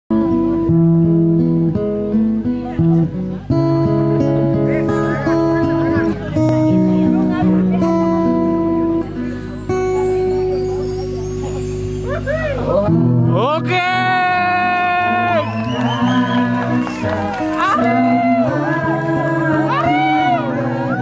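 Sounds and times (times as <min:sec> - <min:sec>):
acoustic guitar chords: 0:00.1 - 0:21.0.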